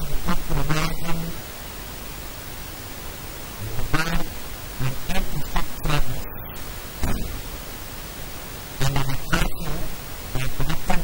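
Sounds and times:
steady hiss: 0.0 - 11.0
man speaking into microphones: 3.6 - 4.1.

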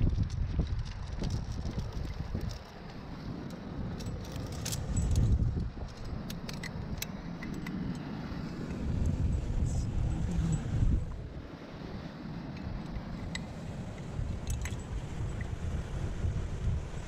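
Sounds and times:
metal climbing gear clinking: 0.0 - 8.2, 14.4 - 15.3.

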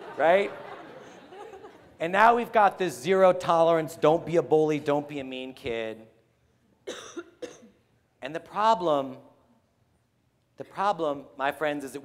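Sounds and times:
person coughing: 6.8 - 7.8.

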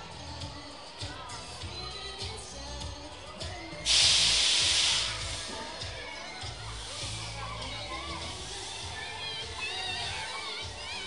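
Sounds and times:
background music: 0.0 - 11.0
loud burst of hissing: 3.9 - 5.6.

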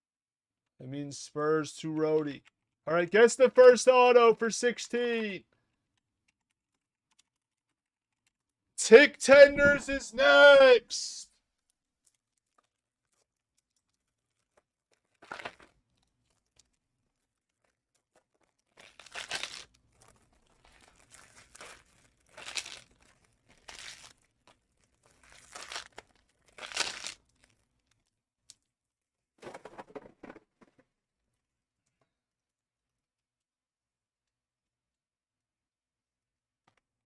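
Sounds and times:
plastic wrapping tearing and crinkling: 11.6 - 28.7.

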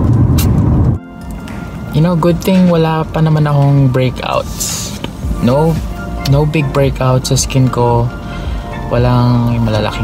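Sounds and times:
car cabin rumble: 0.0 - 1.0
faint steady music tones: 0.8 - 10.0.

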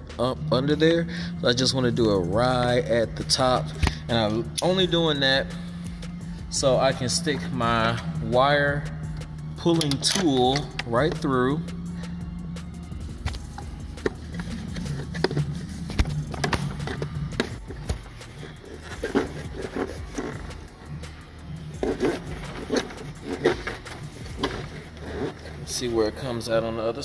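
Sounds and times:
low background music: 0.0 - 27.0
wire tool scraping and clicking: 9.7 - 11.3.

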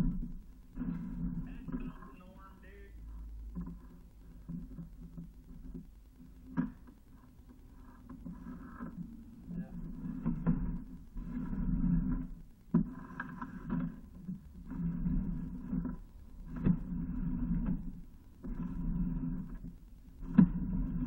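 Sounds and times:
camera rod scraping in pipe: 9.9 - 21.0.

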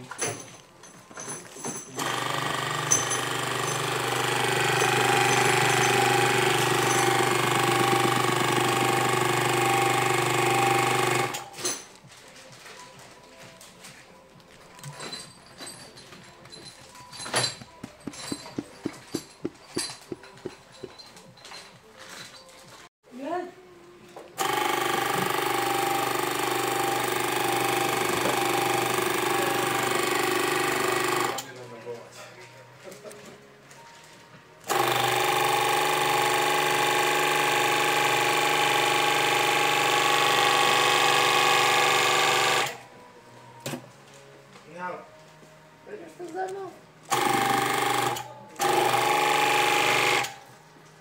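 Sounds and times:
hydraulic pump pulsing and running: 2.0 - 11.6, 24.4 - 31.4, 34.7 - 42.8, 47.1 - 50.4.

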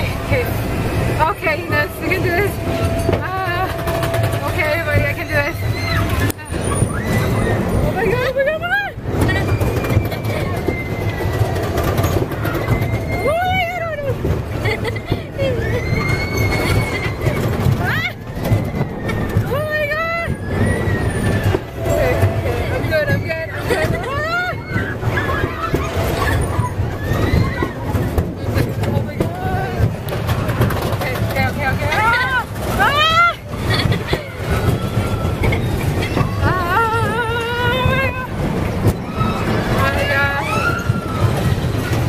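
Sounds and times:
low rumble of ride running: 0.0 - 42.0
riders shrieking: 3.5 - 14.6, 15.2 - 28.8, 31.9 - 42.0.

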